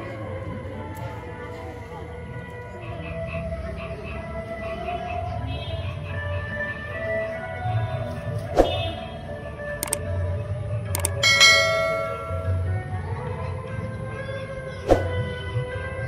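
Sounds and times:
sharp clicks: 0:09.8 - 0:10.0, 0:11.0 - 0:12.2
bright bell ding: 0:11.0 - 0:12.8.

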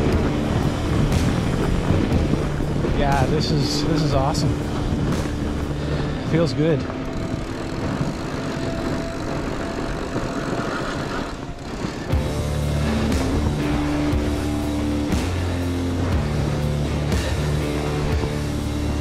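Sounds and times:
music with low held notes: 0:00.0 - 0:10.2, 0:12.1 - 0:19.0
bike tyres rushing over snow: 0:00.0 - 0:19.0
wind on camera: 0:00.0 - 0:19.0.

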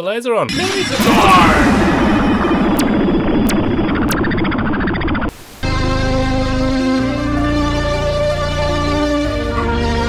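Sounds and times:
burst of noise: 0:00.5 - 0:06.0
background music: 0:05.6 - 0:10.0.

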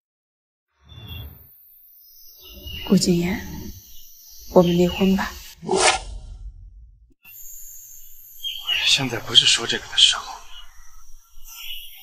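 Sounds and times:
high-pitched hiss: 0:02.0 - 0:05.9, 0:07.3 - 0:12.0
low hum: 0:02.5 - 0:09.4
man speaking: 0:08.6 - 0:10.6.

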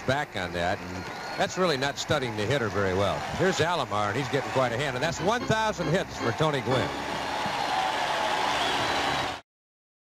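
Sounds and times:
crowd clapping and cheering: 0:00.0 - 0:09.4.

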